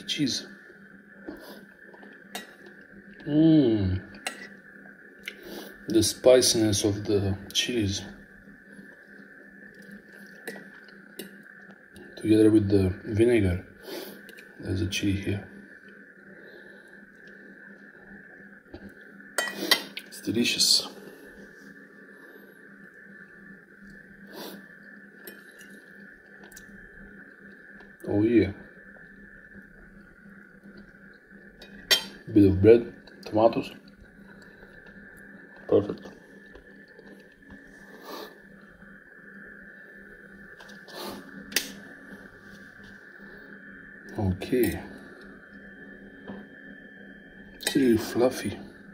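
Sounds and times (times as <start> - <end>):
faint steady hum: 0.0 - 48.9.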